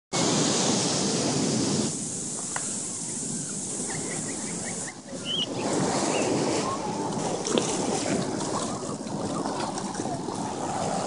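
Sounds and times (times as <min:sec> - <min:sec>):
ocean surf: 0:00.2 - 0:11.0
wind buffeting microphone: 0:00.2 - 0:11.0.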